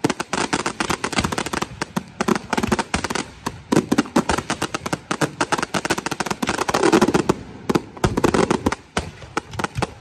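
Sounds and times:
fireworks bangs and crackles: 0:00.0 - 0:10.0.

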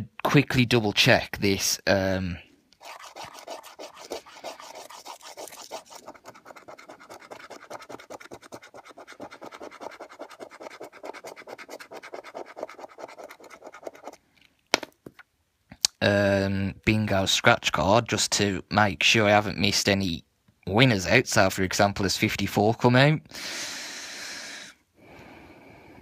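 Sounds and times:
scratchcard being scratched: 0:02.8 - 0:14.2.

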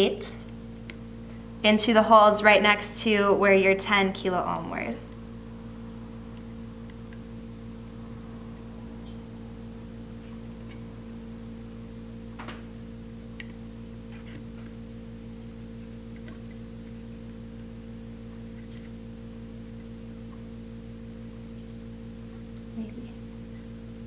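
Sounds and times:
steady electrical hum: 0:00.0 - 0:24.0.

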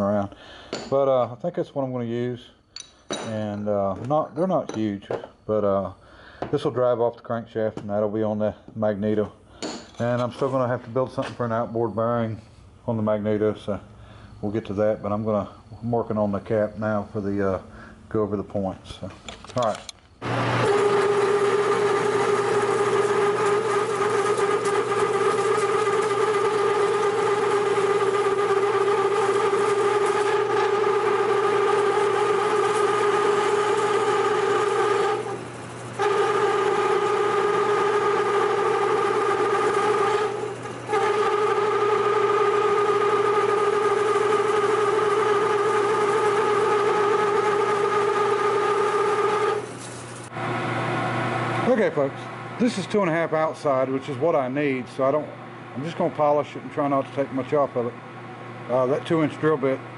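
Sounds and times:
lathe drilling into metal: 0:20.2 - 0:52.0.

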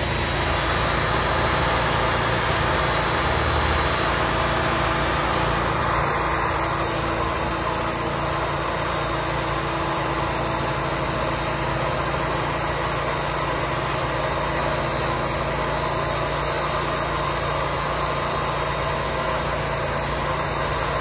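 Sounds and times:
sawmill engine running: 0:00.0 - 0:21.0.

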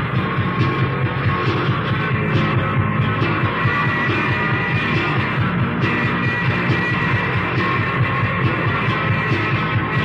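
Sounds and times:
drum machine beat: 0:00.0 - 0:10.0
repeated bass guitar figure: 0:00.0 - 0:10.0
rock band playing instrumental: 0:00.0 - 0:10.0.

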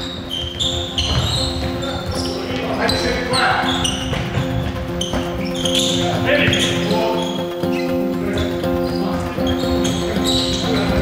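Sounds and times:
sneakers squeaking on floor: 0:00.0 - 0:11.0
players calling out: 0:00.1 - 0:11.0
ball bouncing: 0:01.0 - 0:02.6, 0:03.9 - 0:05.9.

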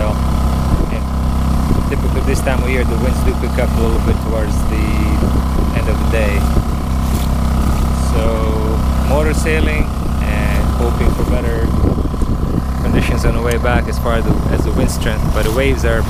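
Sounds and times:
man talking: 0:00.0 - 0:00.2, 0:00.8 - 0:01.1, 0:01.8 - 0:06.6, 0:07.8 - 0:12.1, 0:12.7 - 0:16.0
boat motor droning: 0:00.0 - 0:16.0.

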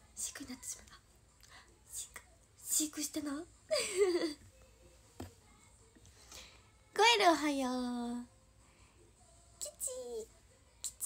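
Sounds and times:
woman speaking softly: 0:00.0 - 0:01.0, 0:01.9 - 0:03.5.

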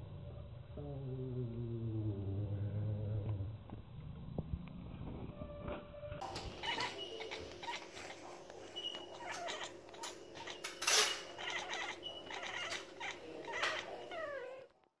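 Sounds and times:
cat chirping and chattering: 0:06.2 - 0:14.7.

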